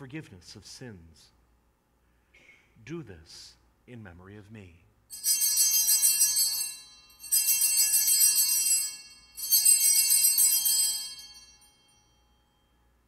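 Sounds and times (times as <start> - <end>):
small hand bells ringing: 5.1 - 12.8.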